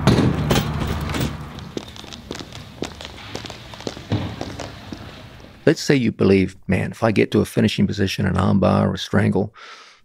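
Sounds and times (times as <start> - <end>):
footsteps on rink floor: 0.0 - 5.6
hand truck rolling floor mats: 0.0 - 5.6.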